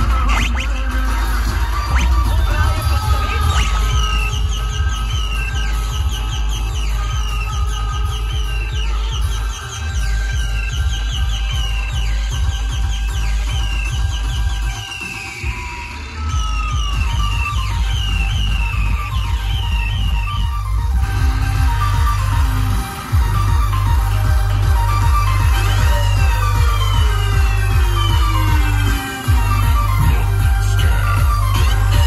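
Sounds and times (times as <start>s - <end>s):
electronic dance music: 0.0s - 32.0s.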